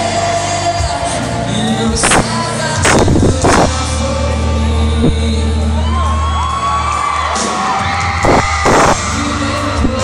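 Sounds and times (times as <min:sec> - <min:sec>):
live band playing: 0:00.0 - 0:10.0
crowd whooping and cheering: 0:05.4 - 0:10.0.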